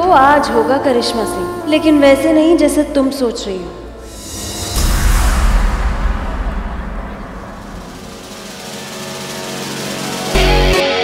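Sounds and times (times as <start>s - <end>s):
droning chord score: 0.0s - 11.0s.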